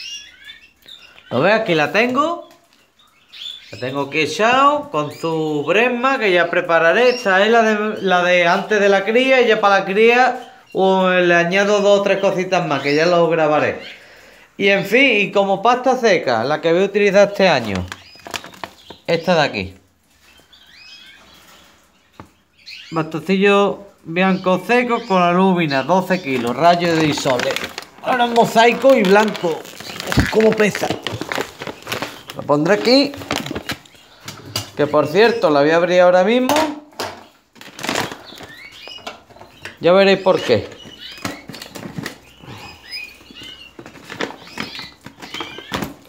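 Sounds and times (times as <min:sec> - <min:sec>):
canaries chirping: 0:00.0 - 0:46.0
plastic bag crinkling: 0:17.3 - 0:19.4, 0:25.9 - 0:34.1, 0:37.5 - 0:39.5, 0:40.4 - 0:46.0.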